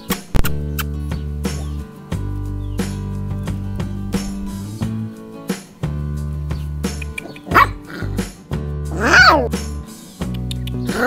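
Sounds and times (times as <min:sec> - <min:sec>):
background music with low notes: 0:00.0 - 0:11.0
puppy barking: 0:07.1 - 0:08.2, 0:08.9 - 0:09.6, 0:10.8 - 0:11.0.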